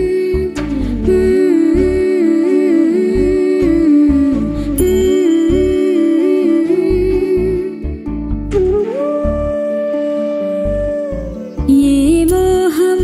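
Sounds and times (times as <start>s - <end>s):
gliding melody: 0.1s - 13.0s.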